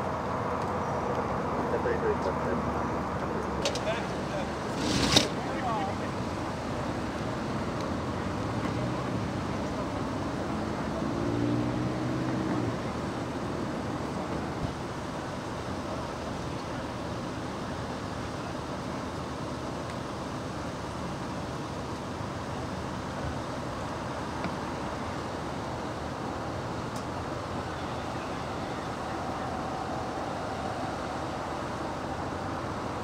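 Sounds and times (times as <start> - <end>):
low engine hum: 0.0 - 33.0
roadside traffic noise: 0.0 - 33.0.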